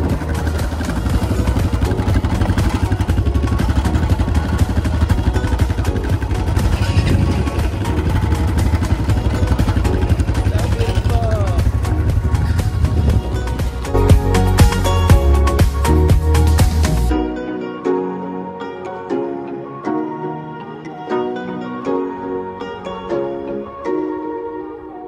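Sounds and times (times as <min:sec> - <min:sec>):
atv engines rumbling: 0:00.0 - 0:17.1
people's voices: 0:10.3 - 0:13.3.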